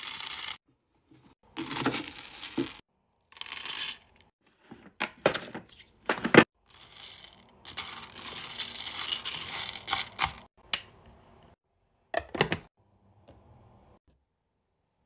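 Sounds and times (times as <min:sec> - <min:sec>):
wax beads rattling into metal pot: 0:00.0 - 0:00.6, 0:06.6 - 0:10.5.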